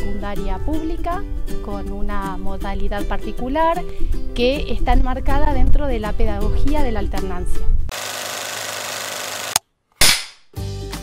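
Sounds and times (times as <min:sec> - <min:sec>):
sharp crack: 0:09.5 - 0:10.6.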